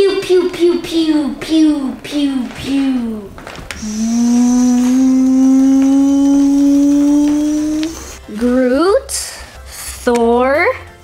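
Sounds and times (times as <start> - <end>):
child holding rising vocal note: 3.8 - 8.2.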